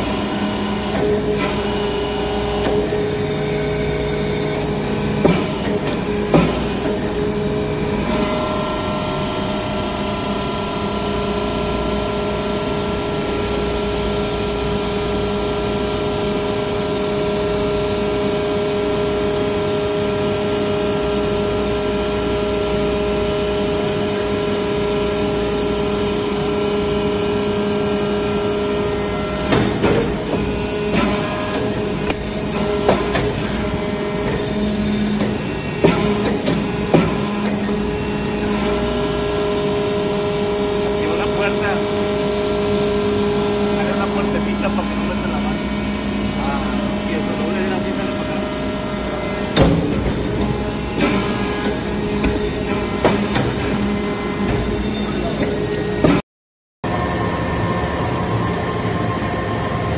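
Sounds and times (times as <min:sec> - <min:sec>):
hydraulic pump humming: 0:00.0 - 0:56.2.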